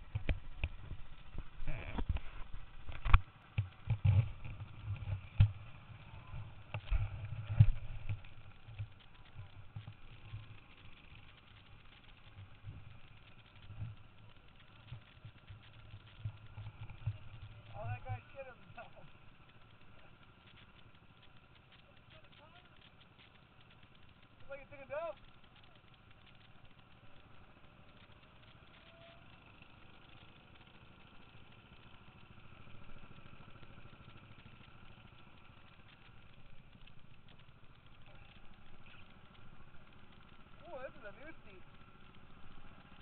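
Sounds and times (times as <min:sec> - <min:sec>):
go-kart engines idling: 0:00.0 - 0:43.0
small ticks: 0:00.0 - 0:43.0.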